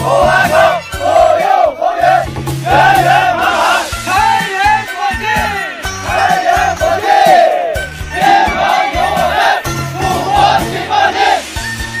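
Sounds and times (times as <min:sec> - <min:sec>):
soldiers shouting in unison: 0:00.0 - 0:11.4
background music: 0:00.0 - 0:12.0.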